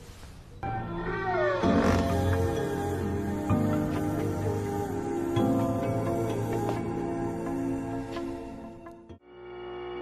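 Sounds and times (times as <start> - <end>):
soft background music: 0.1 - 10.0.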